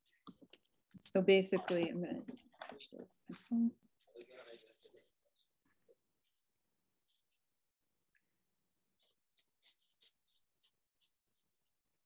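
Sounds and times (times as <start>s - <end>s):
pencil scratching on paper: 4.0s - 7.6s, 8.8s - 12.0s.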